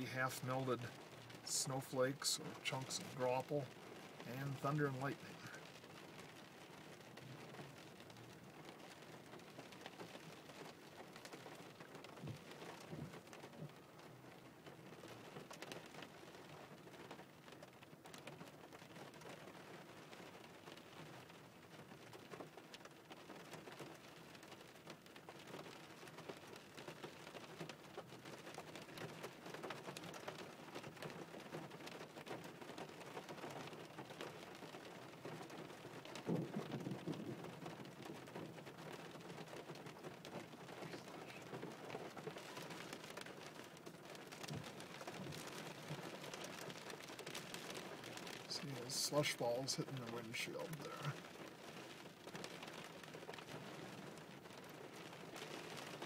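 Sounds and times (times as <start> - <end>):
low rumble of thunder: 36.2 - 37.8.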